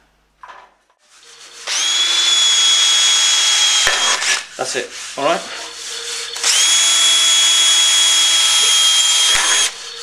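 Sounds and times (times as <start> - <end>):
cordless drill drilling steel: 1.6 - 4.5, 6.3 - 10.0.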